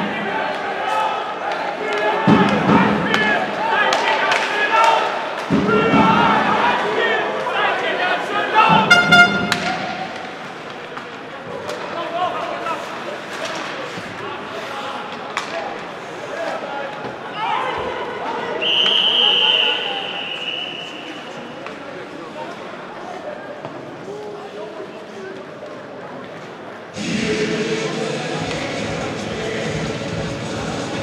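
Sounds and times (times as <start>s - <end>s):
spectators talking: 0.0s - 31.0s
horn blast: 8.7s - 10.0s
puck and sticks knocking boards: 8.7s - 12.0s
referee's whistle: 8.8s - 9.5s, 18.6s - 21.3s.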